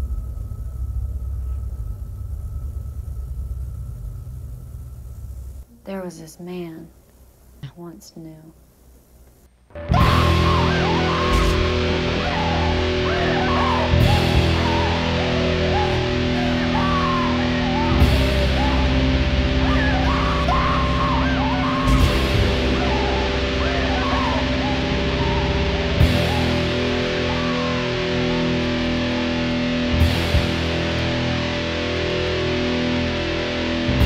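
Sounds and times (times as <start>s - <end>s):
black metal music: 9.8s - 34.0s.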